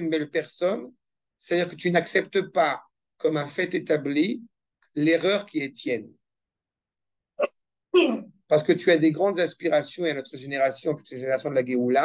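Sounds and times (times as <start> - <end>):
man lecturing: 0.0 - 6.2, 7.9 - 12.0.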